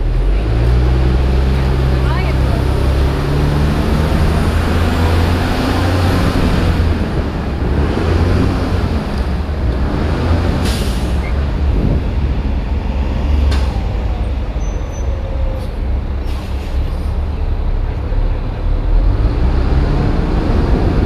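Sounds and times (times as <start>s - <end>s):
bus engine rumble: 0.0s - 21.0s
road and body noise: 0.0s - 21.0s.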